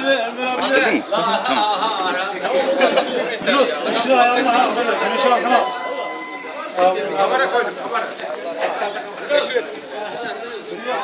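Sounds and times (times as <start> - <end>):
men chattering: 0.0 - 11.0.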